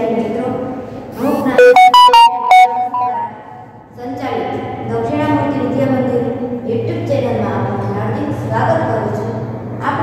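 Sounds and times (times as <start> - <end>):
bright ringing musical jingle: 1.6 - 3.4.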